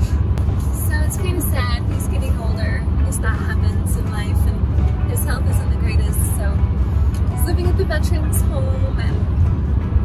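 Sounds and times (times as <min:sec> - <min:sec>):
car cabin road rumble: 0:00.0 - 0:10.0
woman talking: 0:00.8 - 0:06.6, 0:07.4 - 0:09.2.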